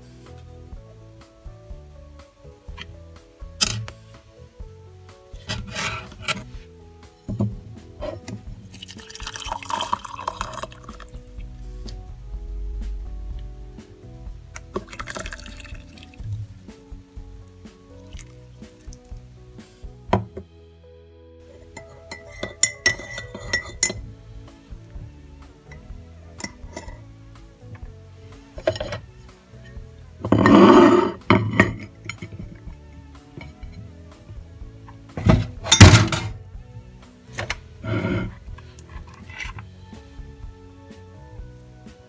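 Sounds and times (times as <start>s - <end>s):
background music: 0.0s - 42.0s
crockery clattering: 21.7s - 24.0s, 30.2s - 32.5s, 35.2s - 36.4s.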